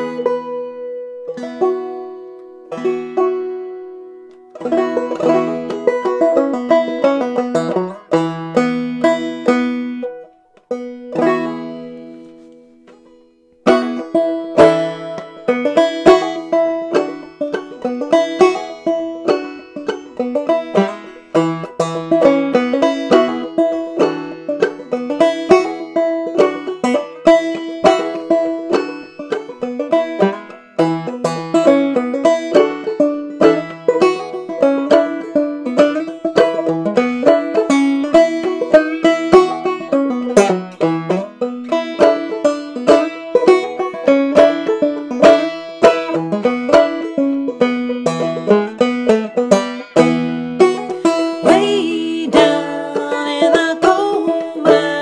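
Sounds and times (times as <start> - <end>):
banjo picking: 0.0 - 55.0.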